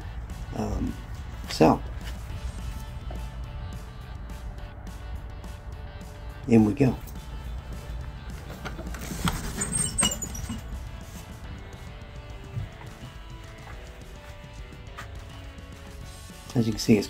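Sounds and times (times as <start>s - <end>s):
background music: 0.0s - 17.0s
wooden door opening: 8.3s - 10.8s.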